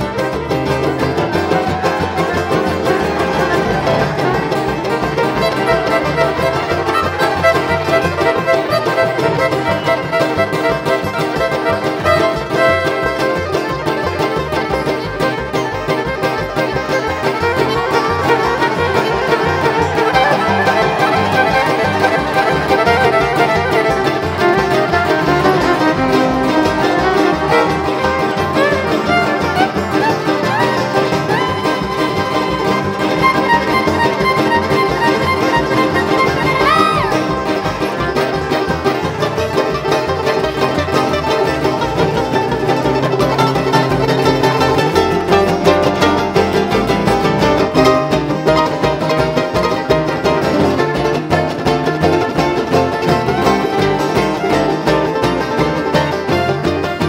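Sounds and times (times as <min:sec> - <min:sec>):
bluegrass string band playing: 0:00.0 - 0:57.0.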